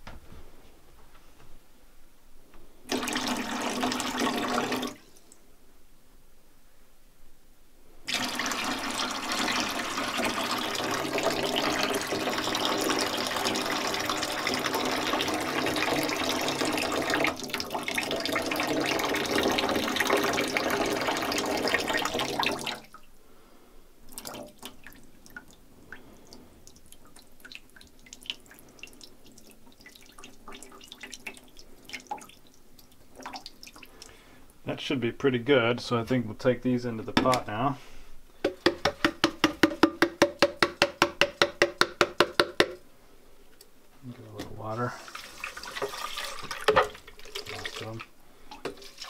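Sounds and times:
water splashing into steel sink: 26.7s - 34.1s, 45.0s - 49.0s
plastic jug clicks and taps: 38.4s - 42.8s.

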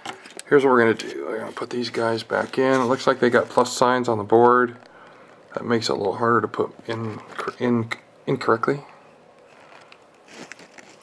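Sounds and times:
faint rustles: 9.4s - 11.0s.

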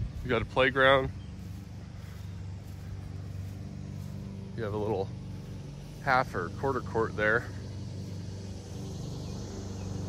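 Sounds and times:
faint outdoor background noise: 0.0s - 10.0s
low mechanical hum: 0.0s - 10.0s.

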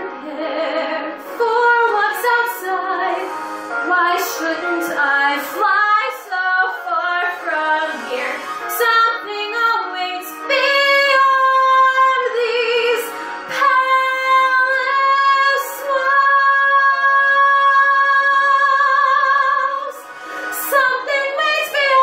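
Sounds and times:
woman singing show tune: 0.0s - 22.0s.

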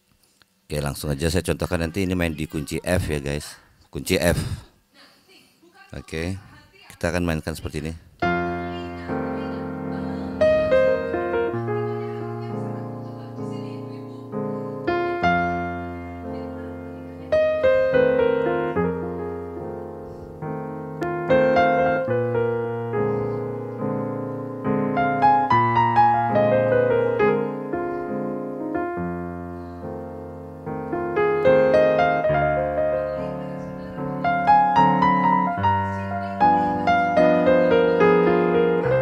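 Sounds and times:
piano playing blues: 8.2s - 39.0s.

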